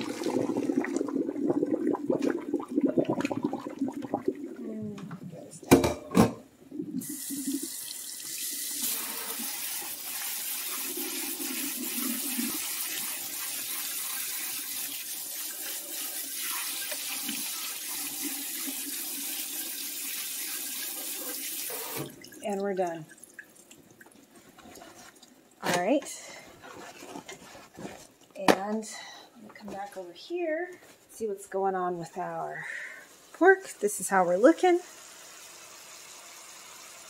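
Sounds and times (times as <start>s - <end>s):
water draining into a sink: 0.0s - 5.2s
kitchen faucet running: 7.0s - 22.6s, 33.1s - 37.0s.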